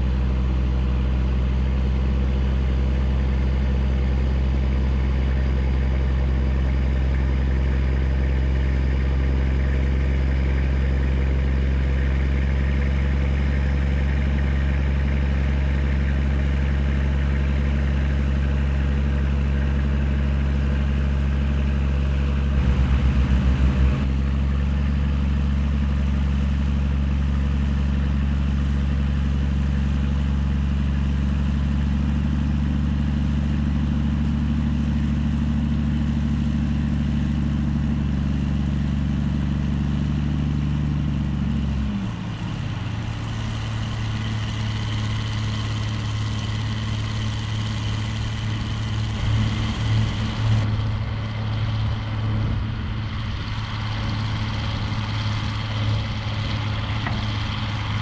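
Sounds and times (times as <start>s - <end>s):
diesel truck engine idling: 0.0s - 58.0s.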